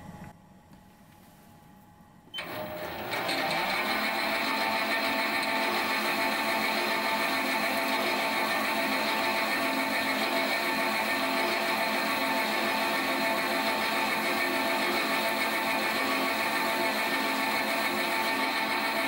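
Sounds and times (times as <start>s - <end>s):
metalworking lathe whining: 2.4s - 19.0s.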